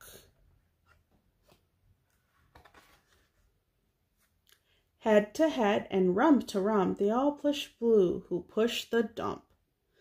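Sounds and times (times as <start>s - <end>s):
book page turning: 0.8s - 3.5s.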